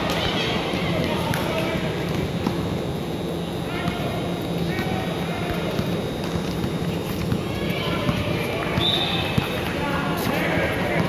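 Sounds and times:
murmur of spectators: 0.0 - 11.0
running footsteps on court: 0.8 - 11.0
sneaker squeaks: 5.7 - 11.0.

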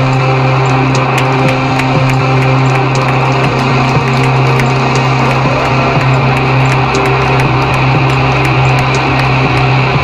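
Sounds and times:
distorted guitars and bass droning: 0.0 - 10.0.

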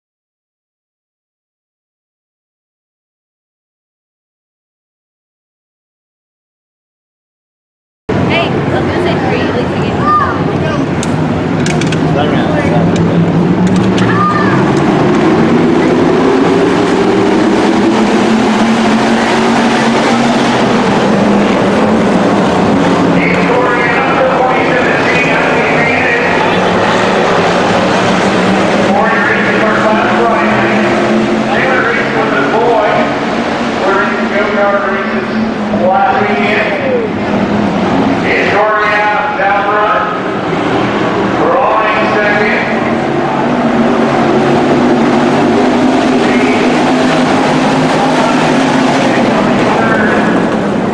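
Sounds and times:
stock car engines revving: 8.1 - 50.9
voices: 8.2 - 16.5, 19.6 - 40.3, 41.3 - 50.9.

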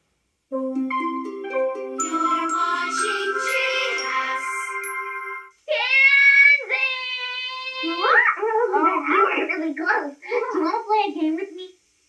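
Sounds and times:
long held sung notes: 0.5 - 5.5
bright jingle tones: 0.5 - 5.6
woman talking: 6.6 - 11.7.

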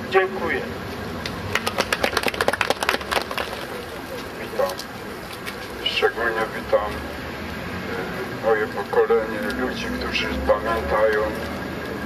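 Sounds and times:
people clapping: 1.5 - 3.9.

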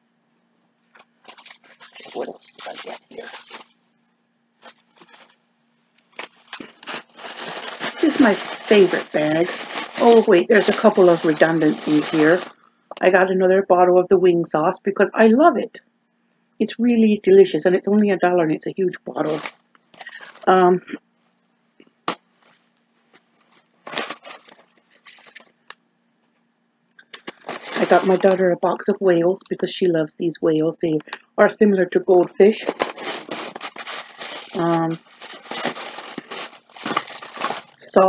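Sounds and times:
plastic bag rustling: 0.9 - 3.8, 4.6 - 5.4, 6.0 - 12.6, 19.1 - 20.7, 22.0 - 25.7, 27.0 - 28.5, 32.2 - 38.0.

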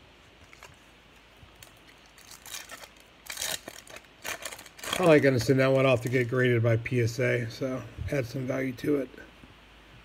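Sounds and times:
wrapper crinkling and tearing: 0.4 - 6.3.

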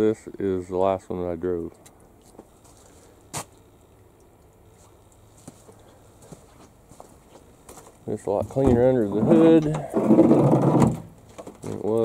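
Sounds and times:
footsteps on wet gravel: 4.7 - 9.6.

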